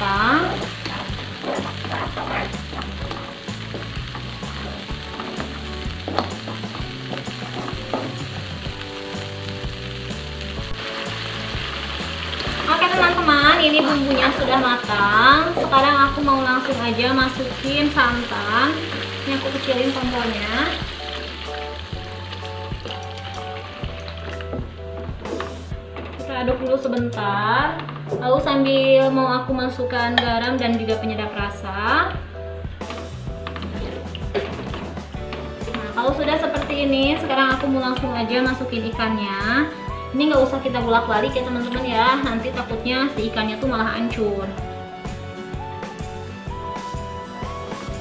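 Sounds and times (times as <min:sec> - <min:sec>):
spatula scraping wok: 0:00.0 - 0:08.6, 0:32.9 - 0:37.3
spice paste sizzling in oil: 0:00.0 - 0:25.7, 0:33.0 - 0:48.0
background music with steady beat: 0:00.0 - 0:48.0.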